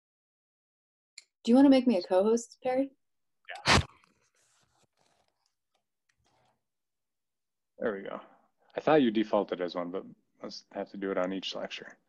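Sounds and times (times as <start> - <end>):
short sharp vocal burst: 3.5 - 3.9.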